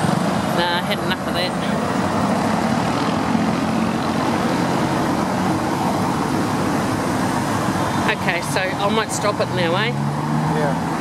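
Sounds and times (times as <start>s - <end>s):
traffic on cobblestones: 0.0s - 11.0s.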